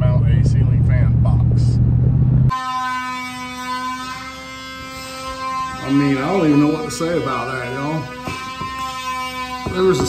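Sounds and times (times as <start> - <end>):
steady pitched hum: 0.0 - 10.0.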